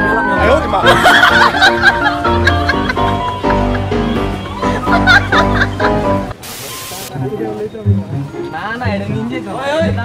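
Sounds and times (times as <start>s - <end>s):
background music: 0.0s - 10.0s
high-pitched hiss: 6.4s - 7.2s.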